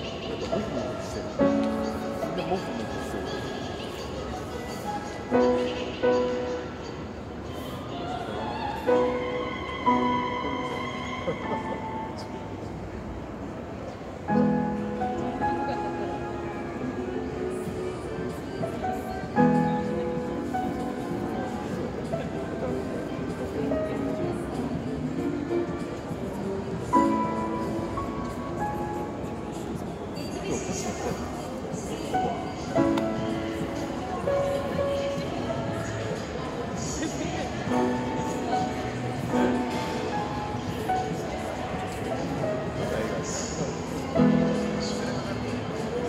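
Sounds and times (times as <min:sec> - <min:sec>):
soft piano notes: 0:00.0 - 0:46.0.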